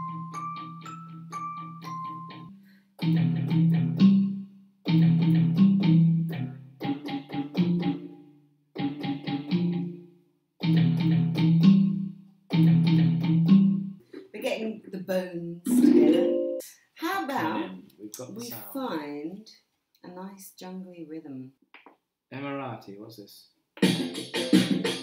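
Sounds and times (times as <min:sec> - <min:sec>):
digital keyboard plucked notes: 0:00.0 - 0:04.3, 0:04.9 - 0:08.2, 0:08.8 - 0:10.0, 0:10.6 - 0:13.8, 0:15.7 - 0:16.6.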